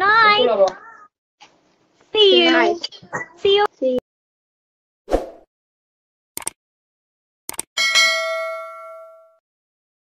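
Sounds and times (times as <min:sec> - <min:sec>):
notification bell ding: 0:07.8 - 0:09.4.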